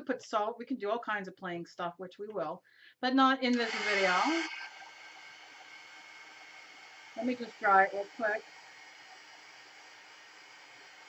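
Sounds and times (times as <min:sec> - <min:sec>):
heat tool fan hissing: 0:03.6 - 0:11.0.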